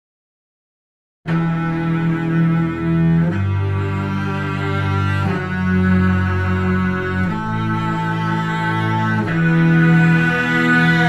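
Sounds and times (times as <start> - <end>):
slow bowed strings: 1.3 - 11.0.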